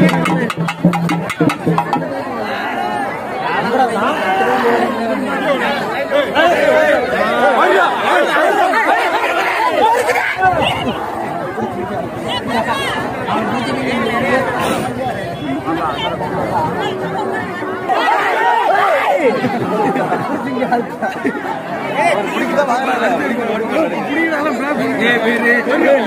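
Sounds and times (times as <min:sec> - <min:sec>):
crowd babble: 0:00.0 - 0:26.0.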